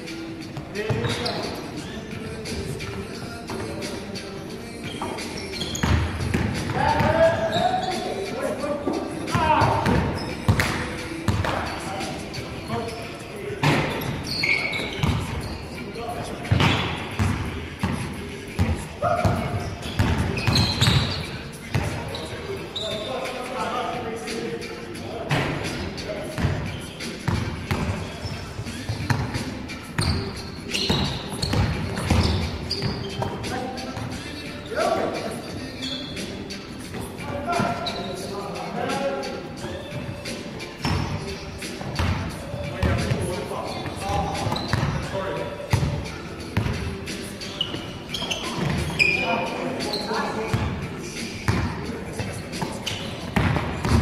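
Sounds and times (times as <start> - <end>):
music playing: 0.0 - 54.0
players' voices: 0.0 - 54.0
basketball bouncing on gym floor: 9.3 - 11.6, 15.0 - 15.4, 18.6 - 22.0, 30.9 - 33.4, 52.6 - 54.0.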